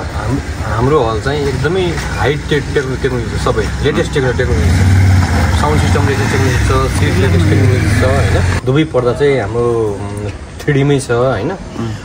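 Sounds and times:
man talking: 0.0s - 4.8s, 5.4s - 12.0s
low engine hum: 1.5s - 8.6s.

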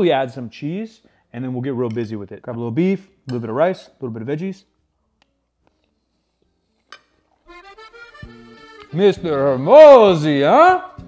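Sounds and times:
accordion music: 7.4s - 11.0s.

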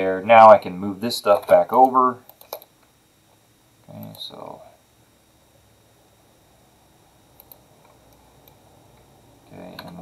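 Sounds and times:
computer mouse clicks: 1.4s - 2.7s, 7.4s - 8.6s.

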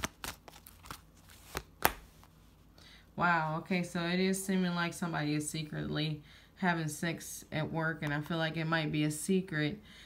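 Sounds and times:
card snaps: 0.0s - 2.1s.

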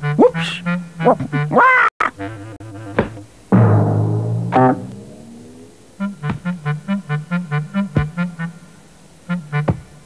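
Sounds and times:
plucked bass note: 2.6s - 6.8s.

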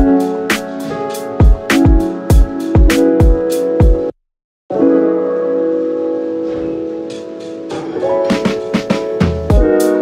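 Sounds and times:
held piano chord: 0.0s - 4.1s, 4.7s - 10.0s.

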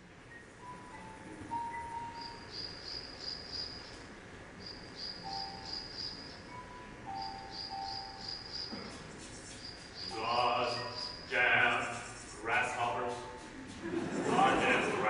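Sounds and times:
insects chirping in pulsing trills: 0.0s - 13.4s
faint steady tones: 0.0s - 15.0s.

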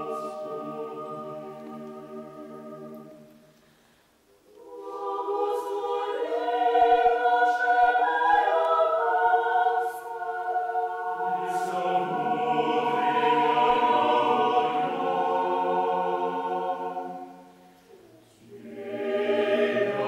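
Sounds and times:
choir singing chant: 0.0s - 3.5s, 4.5s - 20.0s.

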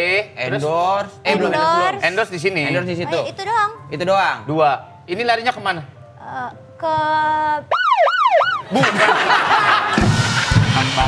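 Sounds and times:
swooping siren sound effect: 7.7s - 8.8s
people laughing: 8.6s - 11.0s.

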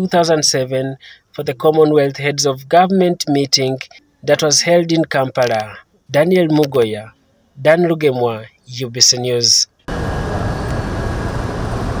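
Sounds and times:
outdoor low rumble: 9.9s - 12.0s.

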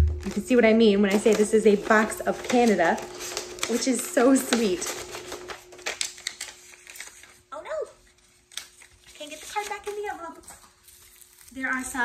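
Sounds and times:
paper rustling and crinkling: 0.0s - 12.0s.

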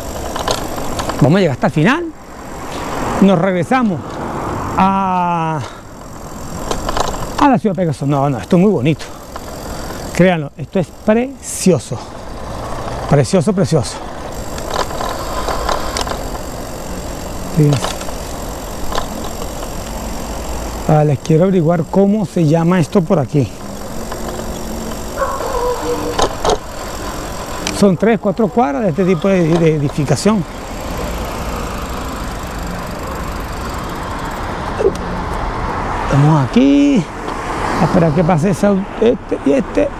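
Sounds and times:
sharp clicks or rattles: 0.0s - 35.5s
wind and road rumble: 0.0s - 39.9s.

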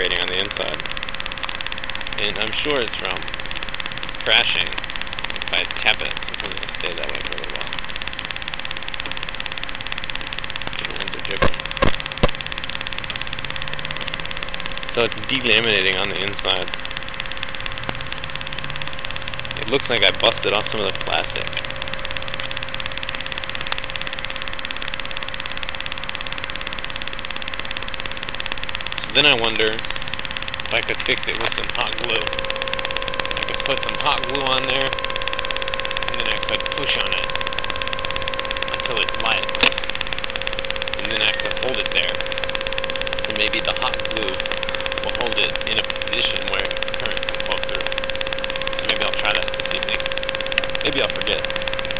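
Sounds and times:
electronic buzz and hiss: 0.0s - 51.9s
faint held tone: 0.0s - 51.9s.

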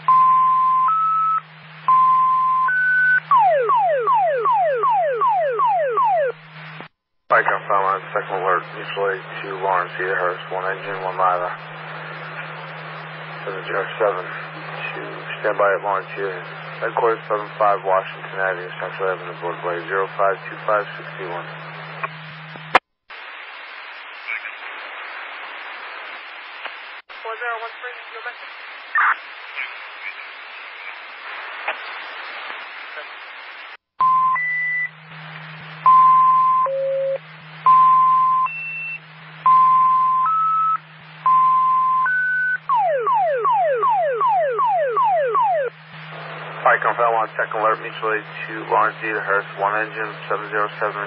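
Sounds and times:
low steady hum: 0.0s - 22.8s, 34.0s - 51.0s
alert tone beeps: 0.1s - 6.3s, 35.9s - 42.6s
radio hiss: 6.2s - 33.8s, 34.9s - 36.0s, 37.2s - 37.8s, 43.9s - 51.0s
faint garbled radio voices: 6.6s - 22.8s, 24.0s - 33.6s, 43.8s - 51.0s.

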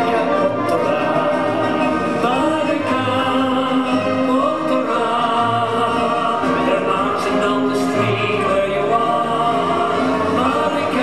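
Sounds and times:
brass and reed band: 0.0s - 11.0s
group of voices singing: 0.0s - 11.0s.

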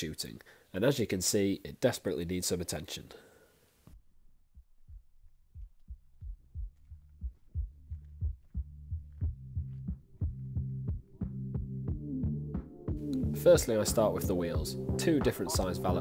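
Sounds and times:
steady pulsing beat: 4.6s - 16.0s
low held bass: 4.9s - 16.0s.

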